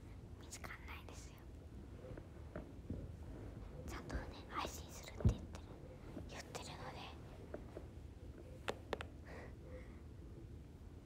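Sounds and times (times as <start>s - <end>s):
woman whispering: 0.4s - 1.5s, 3.9s - 5.7s, 6.3s - 7.2s.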